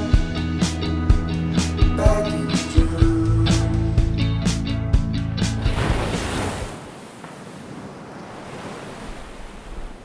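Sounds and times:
music: 0.0 - 6.3
waves breaking: 5.6 - 10.0.

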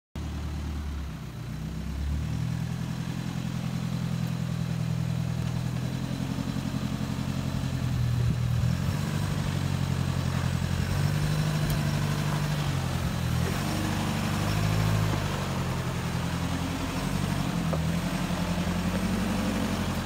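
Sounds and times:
truck engine at low revs: 0.2 - 20.0.

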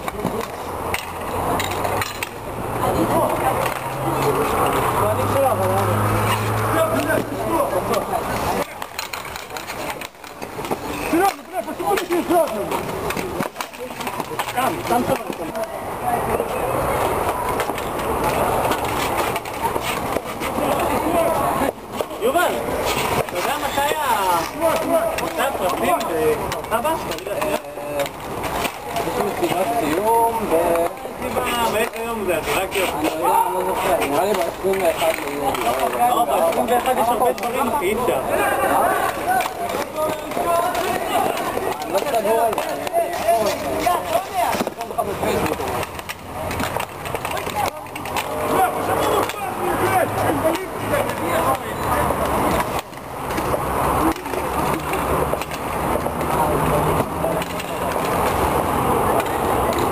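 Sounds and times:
skate wheels rolling on concrete: 0.0 - 59.9.

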